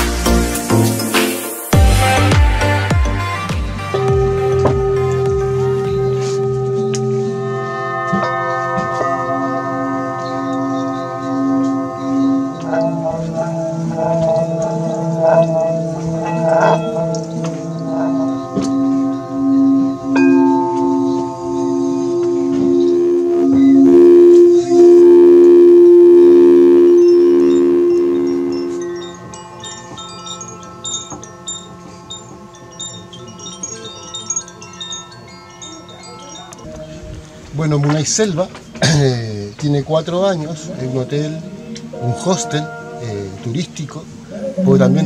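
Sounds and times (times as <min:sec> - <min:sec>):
crystal bowl pure hum: 0:03.9 - 0:37.3, 0:40.0 - 0:45.0
singing bowls ringing: 0:03.9 - 0:39.0, 0:39.7 - 0:45.0
small chimes tinkling: 0:28.3 - 0:39.1.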